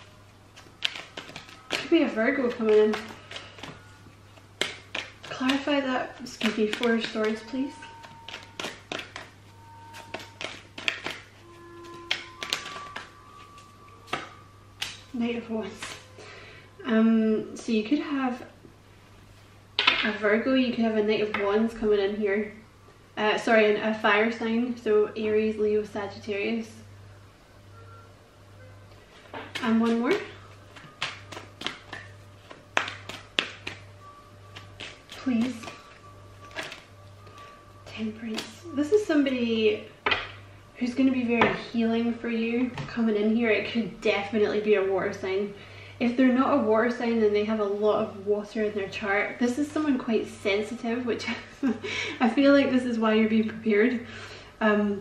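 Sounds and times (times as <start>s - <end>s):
faint background music: 0.0s - 55.0s
low steady hum: 0.0s - 55.0s
cards clicking and tapping: 0.6s - 3.8s, 4.6s - 13.1s, 14.1s - 15.1s, 29.3s - 33.9s, 34.5s - 37.5s
faint steady tones: 5.3s - 19.8s, 24.6s - 31.4s.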